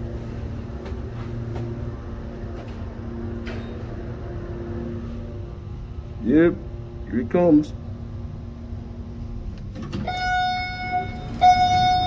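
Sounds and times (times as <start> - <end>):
elevator arrival chime: 9.9 - 12.0.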